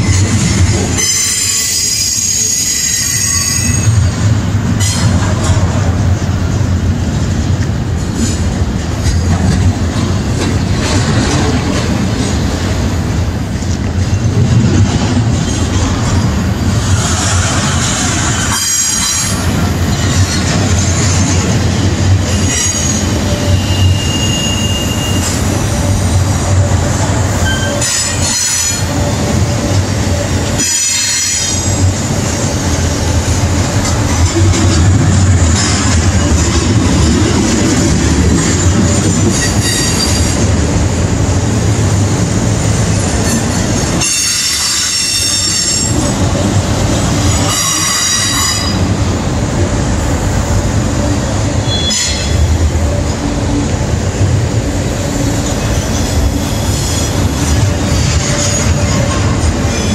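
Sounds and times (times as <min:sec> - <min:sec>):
train wheels rumbling on rails: 0:00.0 - 0:59.9
high-pitched wheel squeal: 0:22.3 - 0:25.4, 0:39.3 - 0:40.4.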